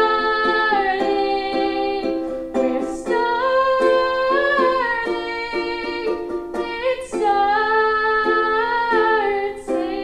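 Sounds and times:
ukulele strummed chords: 0.0 - 10.0.

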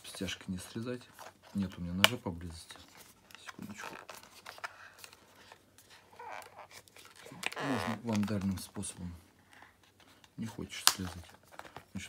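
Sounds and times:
faint scraping and rustling: 0.0 - 12.0.

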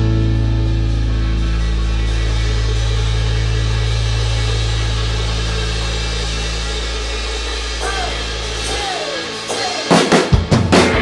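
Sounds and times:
held low bass notes: 0.0 - 8.9
cymbals: 0.0 - 11.0
live rock band playing: 0.0 - 11.0.

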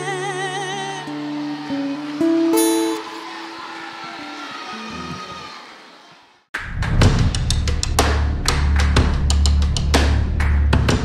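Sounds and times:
acoustic guitar notes ringing: 0.0 - 3.2.

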